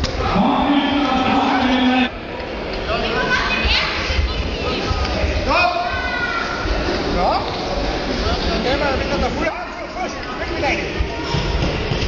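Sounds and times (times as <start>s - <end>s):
voices shouting in a large hall: 0.0s - 12.0s.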